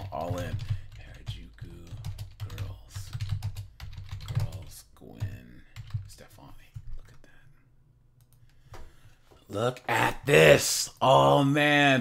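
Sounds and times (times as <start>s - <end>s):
typing on computer keyboard: 0.0s - 6.1s.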